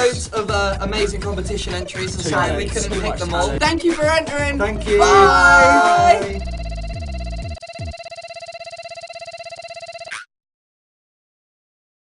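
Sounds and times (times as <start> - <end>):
electronic ringing trill: 4.6 - 10.3.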